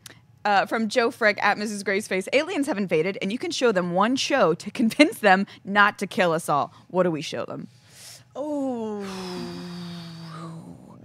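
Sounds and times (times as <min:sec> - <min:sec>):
person humming thinking sound: 0:08.4 - 0:11.0.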